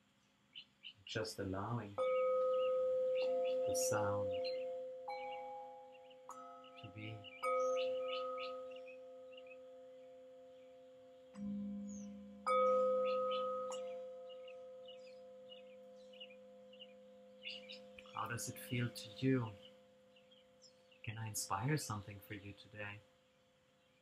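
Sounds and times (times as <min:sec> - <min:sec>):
singing bowls struck ringing: 0:02.0 - 0:20.1.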